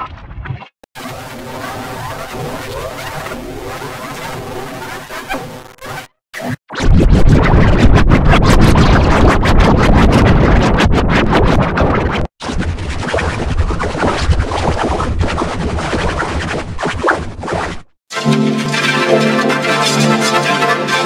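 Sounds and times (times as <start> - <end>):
distorted processed music: 0.0 - 6.5, 18.1 - 21.0
rapid stuttering crackle: 0.4 - 18.0
dull processed music clip: 18.1 - 21.0.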